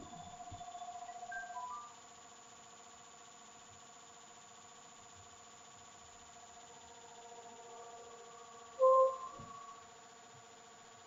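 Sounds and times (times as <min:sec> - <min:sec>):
loud squeak-like tone: 0:08.8 - 0:09.8.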